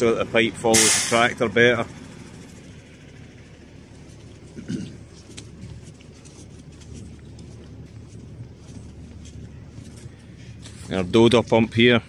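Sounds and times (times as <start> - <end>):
low steady rumble: 0.0 - 12.0
footsteps on muddy concrete: 3.6 - 12.0.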